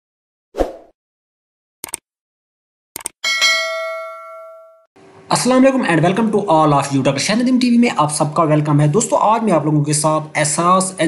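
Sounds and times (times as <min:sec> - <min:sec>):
notification bell ding: 0:03.2 - 0:04.9.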